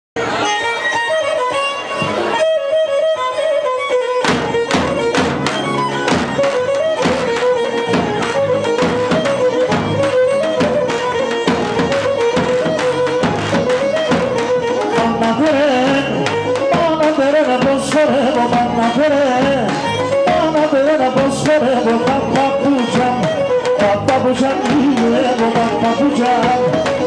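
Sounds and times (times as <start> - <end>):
bowed lyra melody: 0.2 - 27.0
drum steady beat: 4.2 - 27.0.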